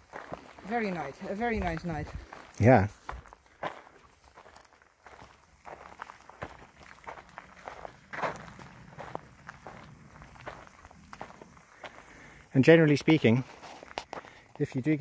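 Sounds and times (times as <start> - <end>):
footsteps on dirt: 0.0 - 15.0.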